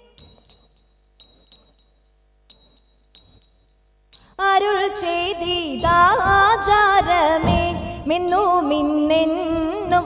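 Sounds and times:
small metal hand cymbals struck: 0:00.0 - 0:04.4.

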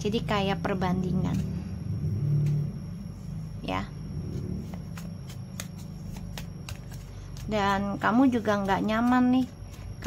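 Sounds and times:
cards being shuffled: 0:04.3 - 0:09.9.

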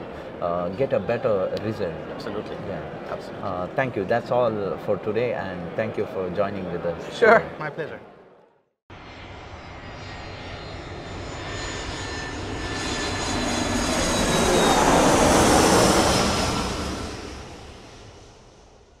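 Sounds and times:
high engine whine: 0:08.9 - 0:19.0
jet airliner flyby: 0:08.9 - 0:19.0.

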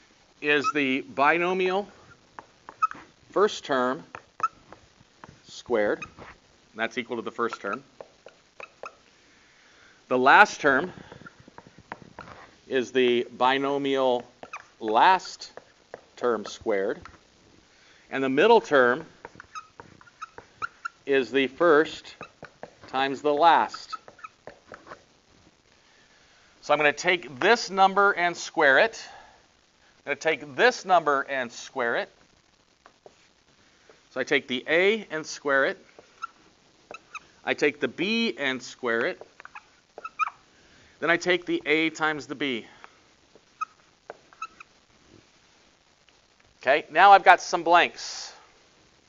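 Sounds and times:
marker squeaking on whiteboard: 0:00.4 - 0:01.0, 0:01.8 - 0:06.4, 0:07.1 - 0:09.1, 0:10.4 - 0:17.2, 0:18.2 - 0:25.1, 0:35.2 - 0:37.6, 0:38.9 - 0:40.5, 0:43.4 - 0:44.8.

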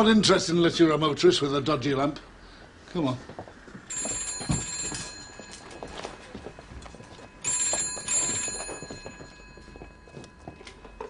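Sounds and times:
telephone bell ringing: 0:03.8 - 0:11.0.

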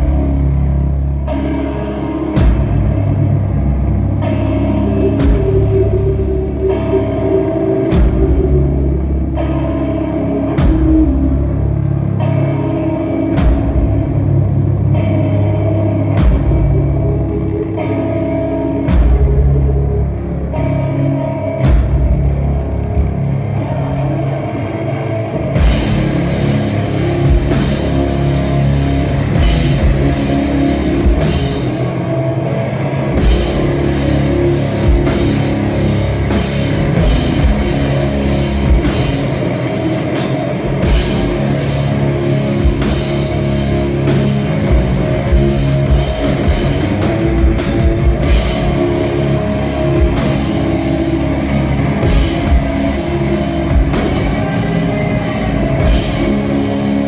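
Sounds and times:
electric guitar chords ringing: 0:00.0 - 0:57.0
rock band playing live: 0:00.0 - 0:57.0
drum and cymbal hits: 0:02.3 - 0:03.4, 0:04.3 - 0:11.9, 0:13.2 - 0:14.7, 0:16.0 - 0:17.7, 0:18.8 - 0:20.0, 0:25.6 - 0:32.1, 0:33.2 - 0:57.0.

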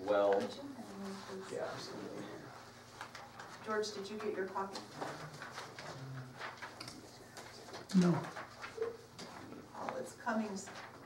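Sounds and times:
faint low murmuring: 0:00.0 - 0:02.9, 0:04.7 - 0:10.2
paper sheets rustling: 0:00.3 - 0:11.0.

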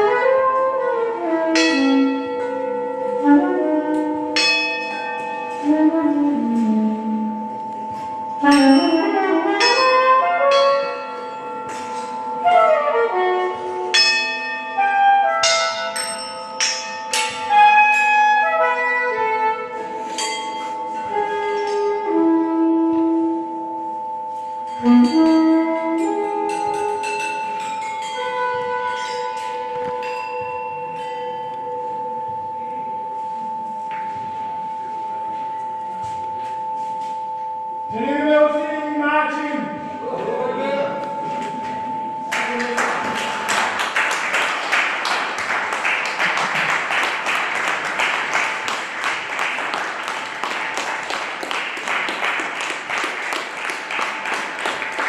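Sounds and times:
pitched melodic line: 0:00.0 - 0:46.2
long steady high tone: 0:00.0 - 0:55.0
bronze bells struck with mallets: 0:01.5 - 0:03.4, 0:04.3 - 0:05.9, 0:06.5 - 0:18.4, 0:20.0 - 0:22.1, 0:23.4 - 0:44.6.

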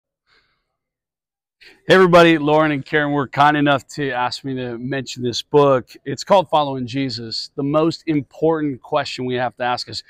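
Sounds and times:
faint intake of breath: 0:00.3 - 0:00.7
man speaking: 0:01.8 - 0:10.0.

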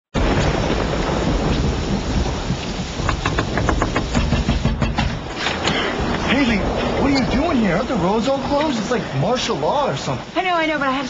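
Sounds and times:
heavy rain falling: 0:00.1 - 0:11.0
thunder rumbling: 0:00.2 - 0:11.0.

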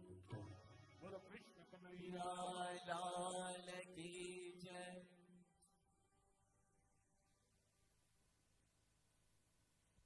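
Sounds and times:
man singing devotional song: 0:00.0 - 0:05.4.

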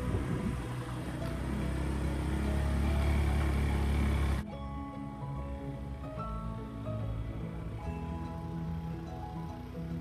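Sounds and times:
motorbike engine rumble: 0:00.0 - 0:04.7
background music: 0:00.0 - 0:10.0.

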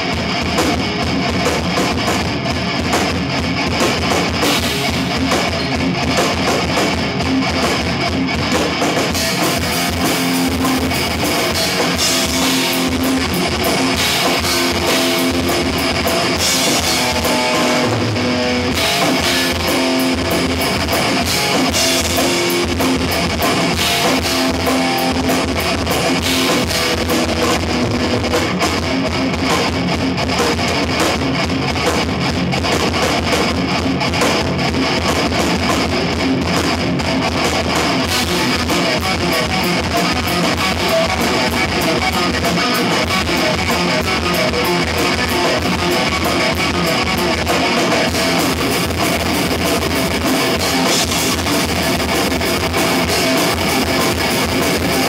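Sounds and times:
distorted electric guitar riffing: 0:00.0 - 0:55.0
fast dense drumming: 0:00.0 - 0:55.0.

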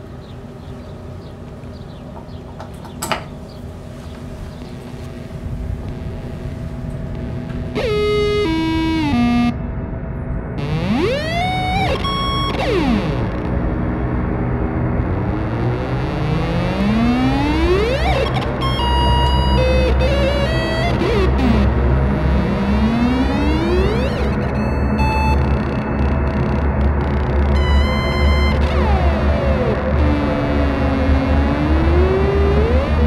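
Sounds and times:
low rumble: 0:04.4 - 0:33.0
electronic synthesizer music: 0:05.1 - 0:09.6, 0:10.6 - 0:33.0
falling tones: 0:07.1 - 0:09.6, 0:10.6 - 0:13.8, 0:14.8 - 0:33.0
rising pitch sweeps: 0:07.1 - 0:09.6, 0:10.6 - 0:33.0.

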